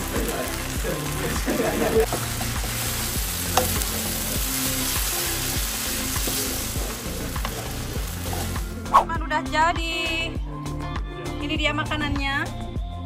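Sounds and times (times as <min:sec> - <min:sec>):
noodles sizzling in a frying pan: 0:00.0 - 0:08.8.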